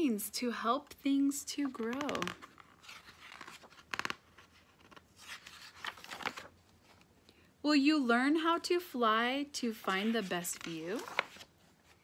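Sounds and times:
page turning: 1.6s - 7.1s, 9.8s - 12.0s
paper rustling and crinkling: 1.6s - 7.1s, 9.8s - 12.0s.

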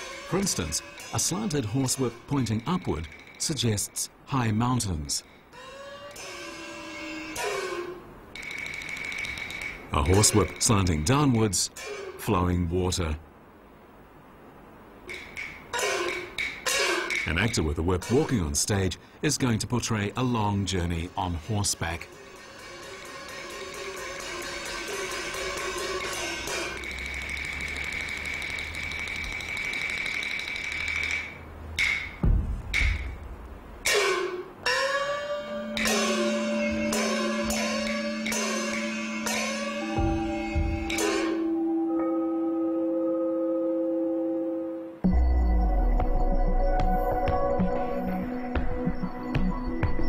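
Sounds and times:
opera accompaniment high sustained note: 34.1s - 45.0s
high steady tone: 35.4s - 47.5s.

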